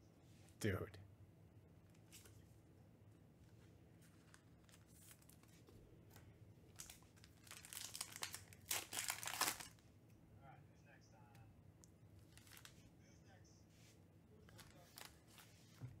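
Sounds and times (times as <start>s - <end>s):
foil wrapper crinkling: 6.7s - 9.8s, 12.3s - 12.8s, 14.5s - 15.5s.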